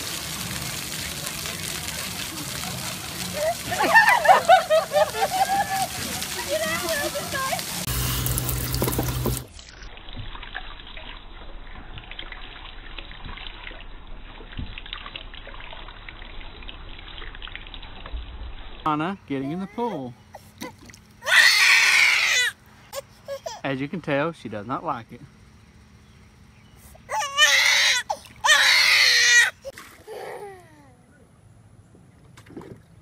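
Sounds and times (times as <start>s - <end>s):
running water hissing: 0.0s - 10.1s
shower head water stream: 0.0s - 19.0s.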